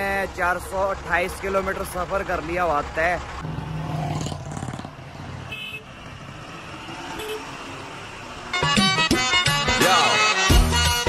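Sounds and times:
highway traffic noise: 0.0s - 11.0s
truck driving past: 2.7s - 9.4s.

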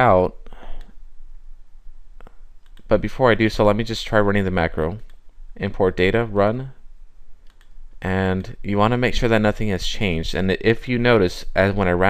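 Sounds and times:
computer mouse clicks: 2.2s - 2.9s, 7.4s - 7.8s.

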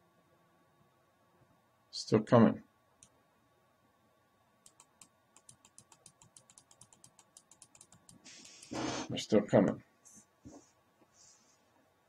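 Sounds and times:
light computer mouse clicks: 4.6s - 8.7s.

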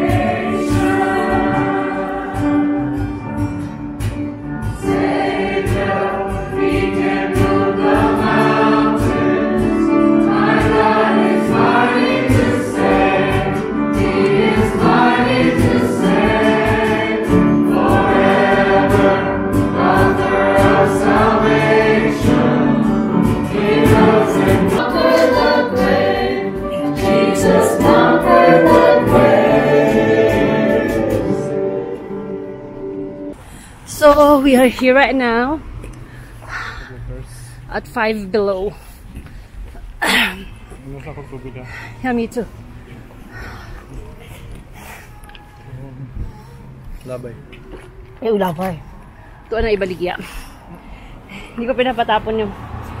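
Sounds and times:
congregation singing a hymn: 0.0s - 3.5s, 4.8s - 33.4s.

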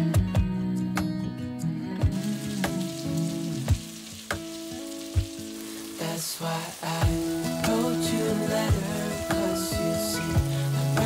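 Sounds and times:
background music: 0.0s - 11.0s
food sizzling in a pan: 2.0s - 11.0s.

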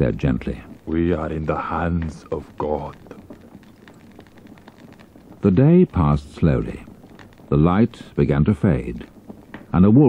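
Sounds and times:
faint crackling hiss: 0.0s - 10.0s
small irregular ticks: 0.0s - 10.0s.

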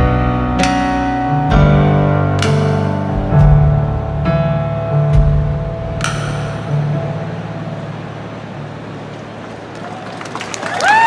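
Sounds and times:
keyboard piano low chord: 0.0s - 9.3s.

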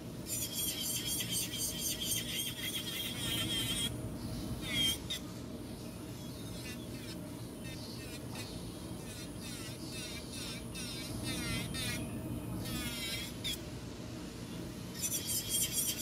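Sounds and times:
nail file rasping: 0.3s - 3.9s, 8.0s - 12.0s, 15.0s - 16.0s.

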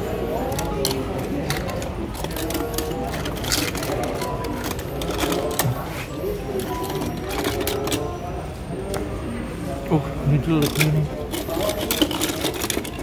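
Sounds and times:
background chatter: 0.0s - 13.0s
toy cars clicking together: 0.3s - 5.8s, 6.5s - 8.2s, 10.6s - 13.0s.

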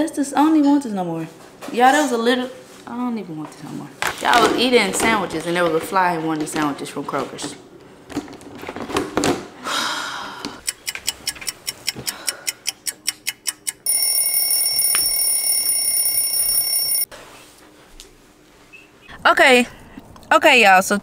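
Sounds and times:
electronic alarm ringing: 13.8s - 17.1s.

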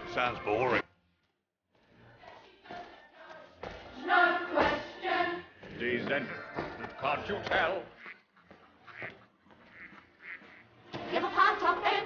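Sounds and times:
voices singing with music: 0.0s - 0.8s, 1.7s - 8.0s, 9.6s - 12.0s
duck quacks: 7.8s - 10.7s.

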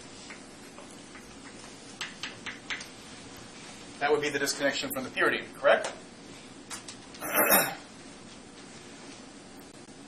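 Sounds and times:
room hum: 0.0s - 10.0s
chalk tapping on blackboard: 1.1s - 2.9s.

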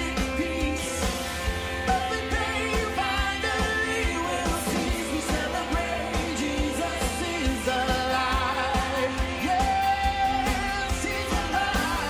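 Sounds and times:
guitars: 0.0s - 12.0s
keyboard: 0.0s - 12.0s
voices singing together: 1.8s - 12.0s.

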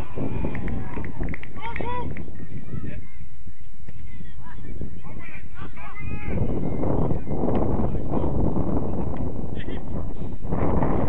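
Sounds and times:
wind rumble on microphone: 0.0s - 11.0s
footballers shouting: 4.3s - 8.4s.

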